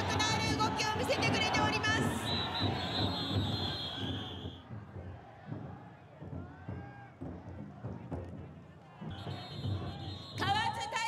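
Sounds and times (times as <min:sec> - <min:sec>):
crowd noise: 0:00.0 - 0:11.0
long shrill whistle: 0:02.1 - 0:04.6
big drum beating slowly: 0:04.6 - 0:08.7.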